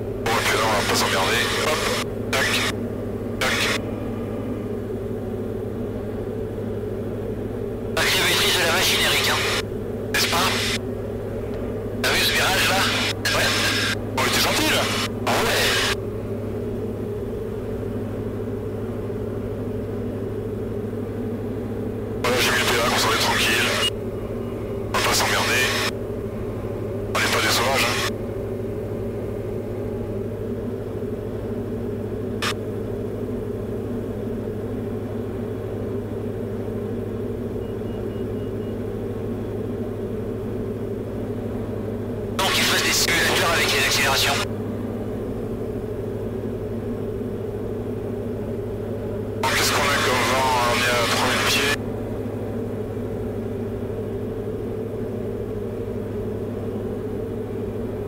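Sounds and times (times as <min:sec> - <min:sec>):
aircraft engine droning: 0:00.0 - 0:58.0
radio voice bursts: 0:00.2 - 0:03.9, 0:08.0 - 0:10.8, 0:12.0 - 0:16.0, 0:22.2 - 0:23.9, 0:24.9 - 0:25.9, 0:27.1 - 0:28.1, 0:42.4 - 0:44.5, 0:49.4 - 0:51.8.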